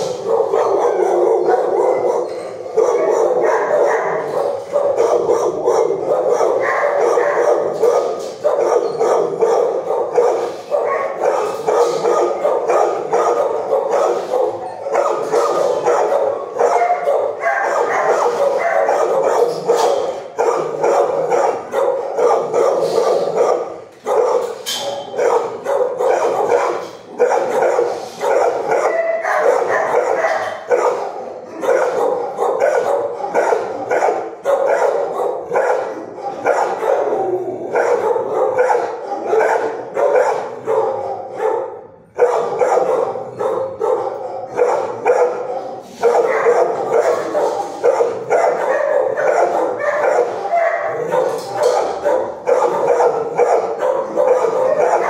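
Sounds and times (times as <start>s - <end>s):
many dogs barking: 0.0s - 55.0s.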